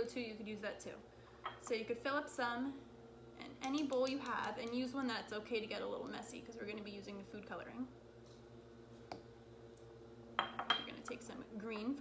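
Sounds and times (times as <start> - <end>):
glass bowl clinking: 10.4 - 11.0.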